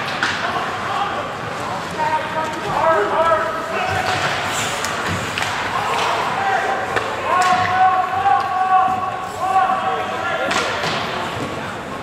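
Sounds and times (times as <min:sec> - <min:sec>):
hockey sticks and puck clacking: 0:00.0 - 0:00.7, 0:03.8 - 0:09.1, 0:10.4 - 0:11.6.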